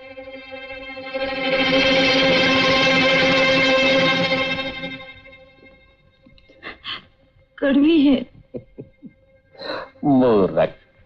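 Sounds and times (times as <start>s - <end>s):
sustained orchestral chord: 0.0s - 6.2s.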